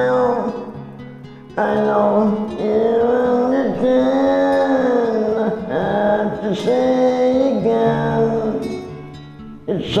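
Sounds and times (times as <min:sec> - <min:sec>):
man singing karaoke: 0:00.0 - 0:00.8, 0:01.6 - 0:08.9, 0:09.6 - 0:10.0
karaoke backing track: 0:00.0 - 0:10.0.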